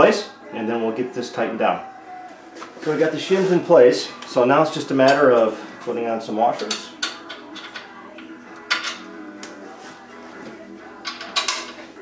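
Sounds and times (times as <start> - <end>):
faint background music: 0.0 - 12.0
metal washers clinking: 6.6 - 9.5, 11.0 - 11.8.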